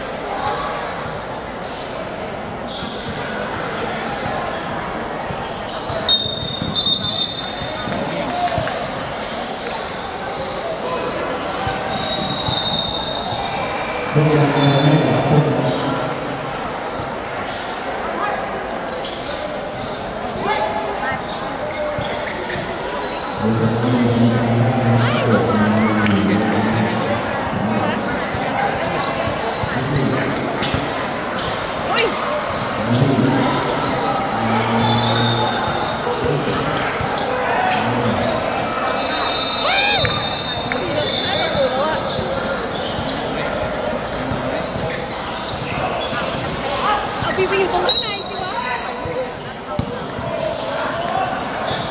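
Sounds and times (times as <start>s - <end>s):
voices of players and onlookers: 0.0s - 51.9s
sneakers squeaking: 0.4s - 51.9s.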